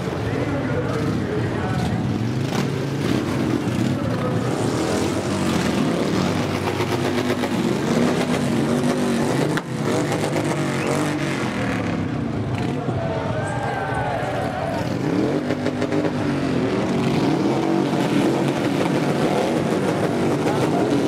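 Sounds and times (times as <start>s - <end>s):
motorcycle engines revving past: 0.0s - 21.0s.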